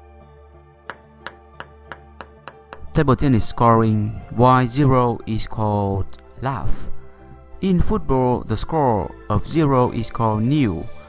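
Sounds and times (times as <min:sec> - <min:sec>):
soft background music: 0:00.0 - 0:11.0
table tennis ball bouncing: 0:00.9 - 0:03.0.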